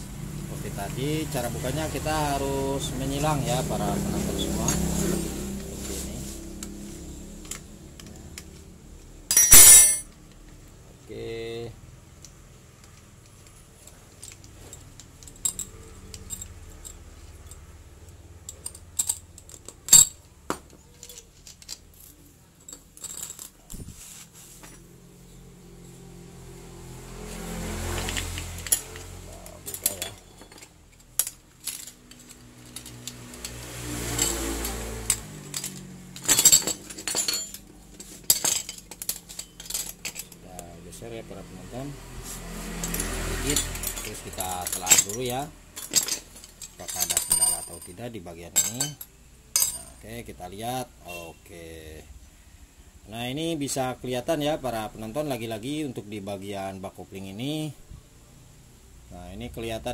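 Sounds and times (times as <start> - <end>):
metal parts clinking on tile: 9.3 - 10.2, 12.8 - 23.8, 27.9 - 40.4, 42.7 - 50.0.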